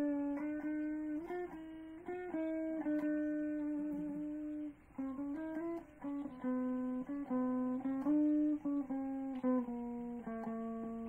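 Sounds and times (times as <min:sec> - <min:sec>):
solo guitar melody: 0:00.0 - 0:11.0.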